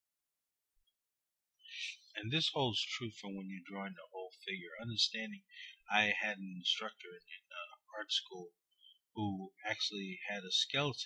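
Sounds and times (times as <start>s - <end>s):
person speaking: 1.7s - 8.6s, 9.2s - 11.0s.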